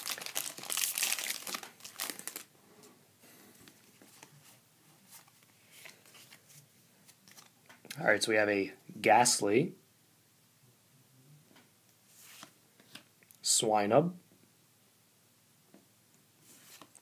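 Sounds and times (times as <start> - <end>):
foil wrapper crinkling and tearing: 0.0 - 2.5
faint rustles of cards: 0.0 - 8.0, 11.5 - 13.4, 16.4 - 17.0.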